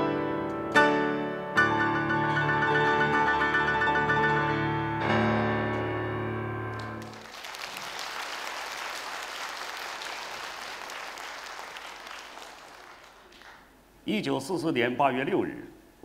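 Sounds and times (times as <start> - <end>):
grand piano chord: 0.0 - 7.2
audience applause: 6.7 - 13.7.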